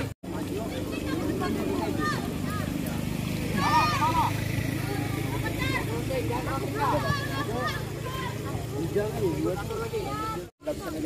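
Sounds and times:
voices calling and shouting: 0:00.0 - 0:11.0.

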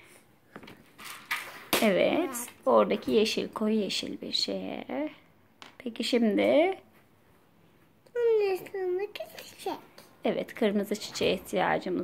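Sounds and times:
woman speaking: 0:01.8 - 0:05.2, 0:05.8 - 0:06.9, 0:10.2 - 0:12.0.

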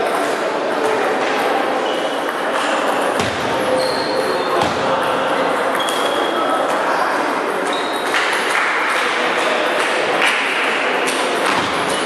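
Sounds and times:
background chatter: 0:00.0 - 0:12.0
short high squeaks: 0:03.7 - 0:04.6.

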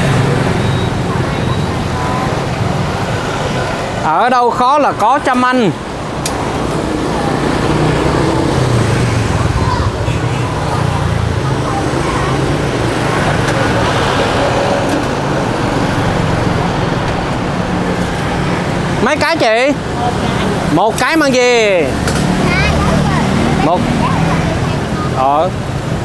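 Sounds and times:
indistinct voices: 0:00.0 - 0:25.7
street traffic: 0:00.0 - 0:26.0.

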